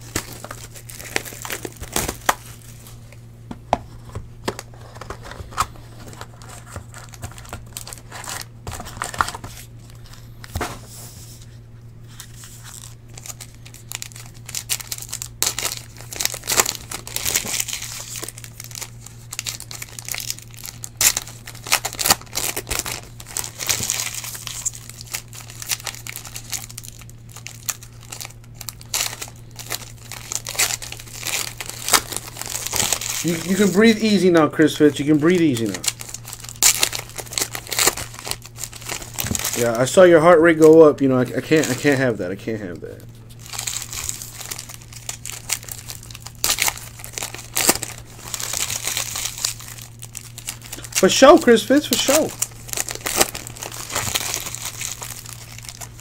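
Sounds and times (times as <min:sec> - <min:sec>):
foil packs crinkling and tearing: 0:00.0 - 0:03.0, 0:04.0 - 0:56.0
steady low hum: 0:00.0 - 0:56.0
cards handled: 0:03.5 - 0:11.5.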